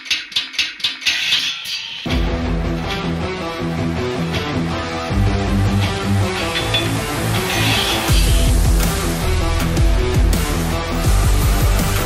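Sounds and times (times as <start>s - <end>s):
sharp scraping strokes: 5.9s - 8.4s.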